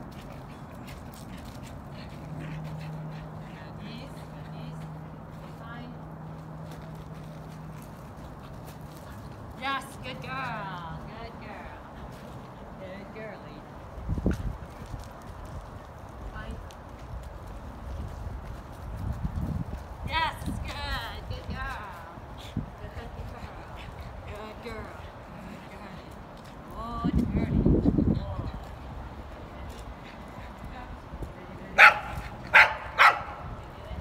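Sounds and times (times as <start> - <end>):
dog barking: 31.8 - 33.4.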